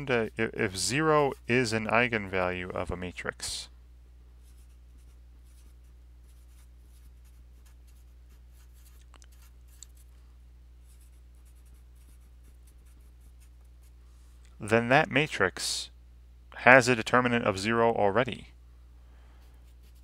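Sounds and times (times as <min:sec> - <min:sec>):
steady low hum: 0:00.0 - 0:20.0
marker writing on paper: 0:04.5 - 0:10.0.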